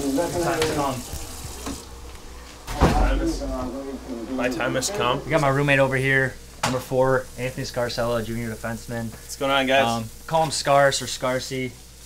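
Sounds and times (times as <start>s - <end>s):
faucet water running into sink: 0.0s - 1.9s.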